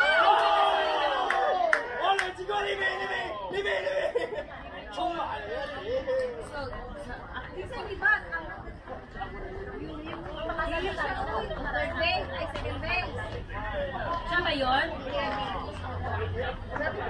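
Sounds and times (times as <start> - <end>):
people chattering and calling out: 0.0 - 17.0.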